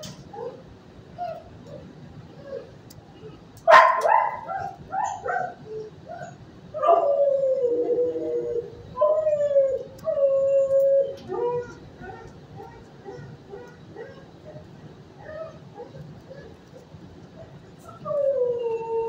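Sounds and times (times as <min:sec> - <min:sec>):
dog barking: 0:03.7 - 0:05.6
dog yipping: 0:03.7 - 0:07.1, 0:11.2 - 0:14.6
dog howling calls: 0:03.7 - 0:19.0.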